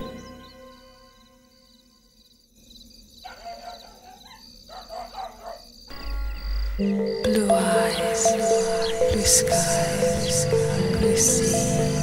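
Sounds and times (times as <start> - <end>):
music: 0.0 - 2.2, 5.9 - 12.0
insects chirping: 0.0 - 12.0
dog barking: 3.2 - 5.7.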